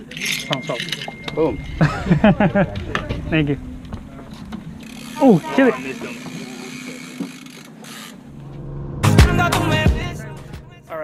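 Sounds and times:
boat engine hum: 0:00.0 - 0:09.1.

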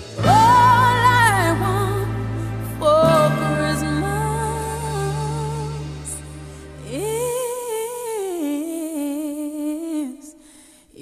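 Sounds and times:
low accompaniment note: 0:00.2 - 0:08.0.

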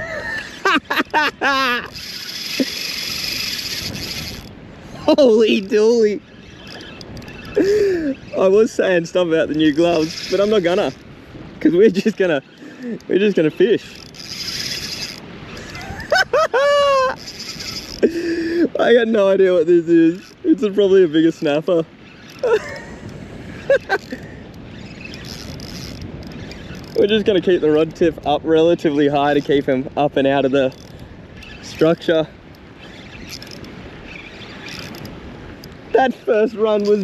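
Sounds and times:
choppy water around boat: 0:00.0 - 0:37.0
wind: 0:00.0 - 0:37.0.

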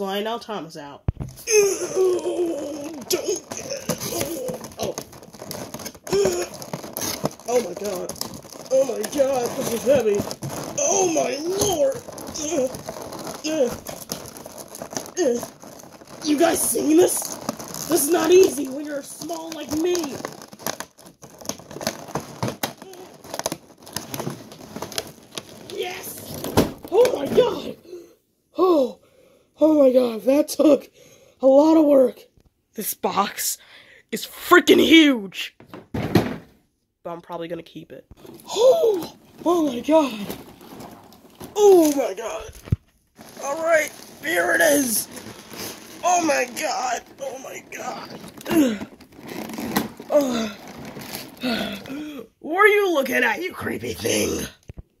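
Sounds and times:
plastic packaging rustling: 0:01.1 - 0:27.8, 0:38.1 - 0:52.1
vocal exclamation: 0:01.4 - 0:05.1, 0:08.7 - 0:13.9
cardboard scraping and crinkling: 0:02.6 - 0:27.8, 0:38.2 - 0:51.9.

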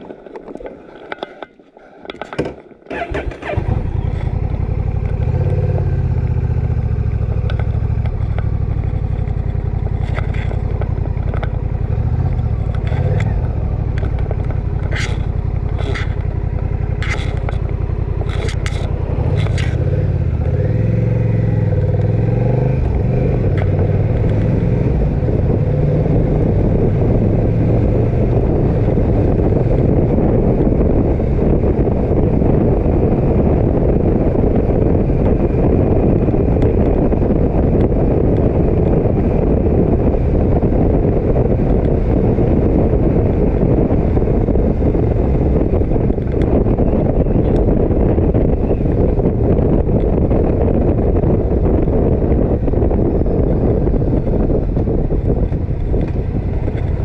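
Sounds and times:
wind noise: 0:00.0 - 0:57.0
motorcycle engine: 0:02.2 - 0:57.0.

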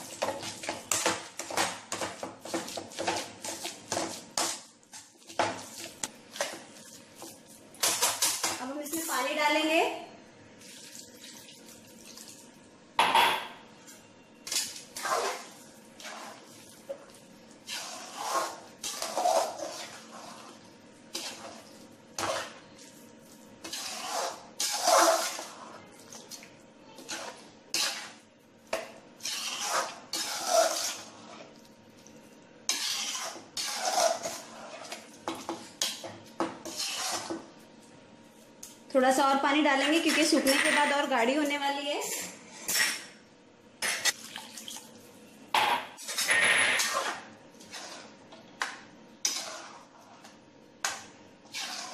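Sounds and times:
utensil scraping a steel pan: 0:17.7 - 0:20.5, 0:23.6 - 0:25.8, 0:29.2 - 0:31.5, 0:32.7 - 0:35.0, 0:36.6 - 0:37.3, 0:46.1 - 0:48.2, 0:49.2 - 0:50.3, 0:51.4 - 0:51.9.

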